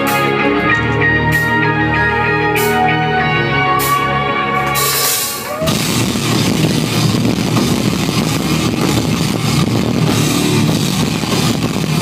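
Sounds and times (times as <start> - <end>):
distorted electric guitar: 0.0 - 12.0
drums: 0.0 - 12.0.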